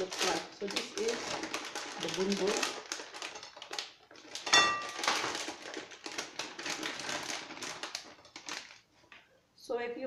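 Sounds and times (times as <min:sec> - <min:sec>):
plastic bag crinkling: 0:00.0 - 0:09.2.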